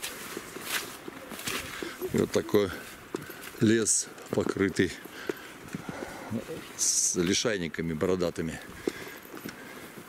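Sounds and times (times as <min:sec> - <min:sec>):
grass swishing against legs: 0:00.0 - 0:03.0
footsteps on forest trail: 0:00.0 - 0:10.0.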